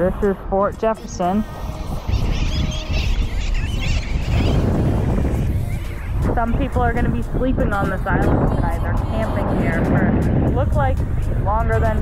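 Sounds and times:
seabirds calling: 0.0 - 10.5
wind buffeting microphone: 0.0 - 12.0.

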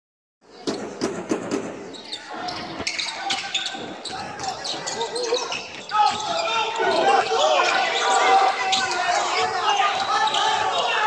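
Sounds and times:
shoe squeaks: 1.9 - 10.8
voices: 2.0 - 11.0.

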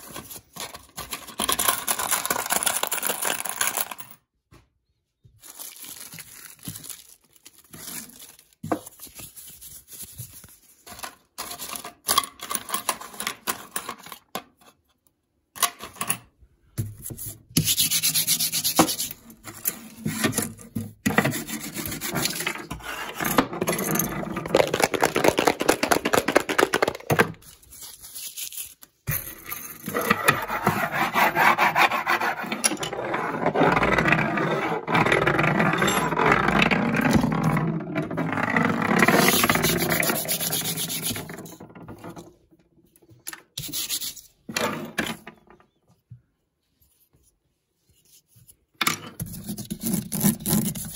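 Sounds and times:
coins rattling in plastic container: 0.2 - 4.2, 23.5 - 27.1, 32.9 - 41.6
rubbing on wooden tabletop: 38.8 - 41.5.

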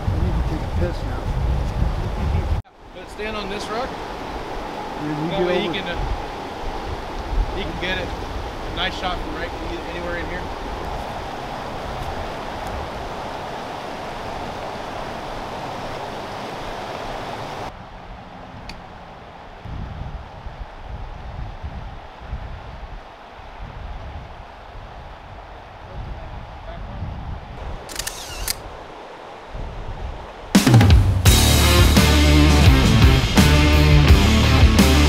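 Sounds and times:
wind rumble on microphone: 0.0 - 2.7, 3.9 - 30.6
rushing river water: 2.7 - 21.3, 27.6 - 33.0
brief clicks: 27.9 - 28.7.

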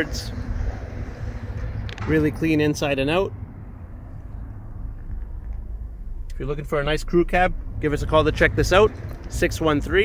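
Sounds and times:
vehicle cab rumble with hiss: 0.0 - 10.0.

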